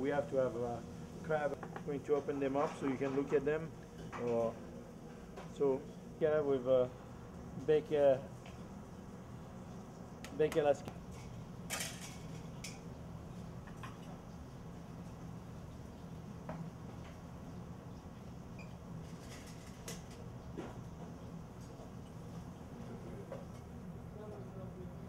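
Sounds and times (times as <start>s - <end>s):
kitchen equipment humming: 0.0s - 25.0s.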